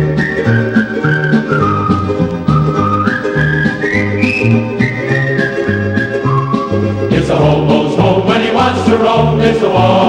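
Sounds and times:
country record with whistled melody: 0:00.0 - 0:10.0.

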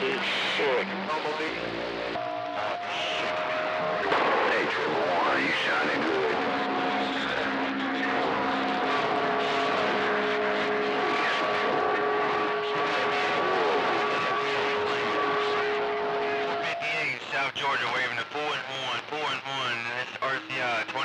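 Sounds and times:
faint garbled voices: 0:00.0 - 0:21.0
radio static: 0:00.0 - 0:21.0
radio whistles: 0:02.2 - 0:17.2.

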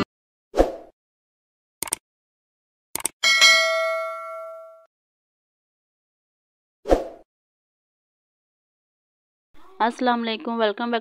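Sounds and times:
notification bell ding: 0:03.2 - 0:04.9.

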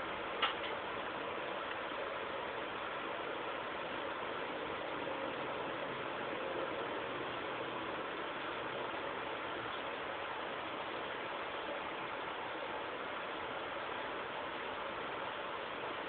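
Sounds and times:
steady background hiss: 0:00.0 - 0:16.0.

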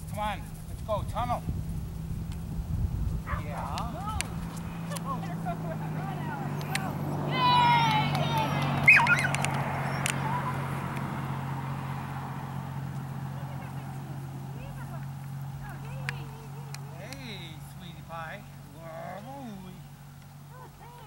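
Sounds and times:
people's voices outdoors: 0:00.0 - 0:21.0
steady low hum: 0:00.0 - 0:21.0
high drawn-out falling call: 0:03.2 - 0:21.0.

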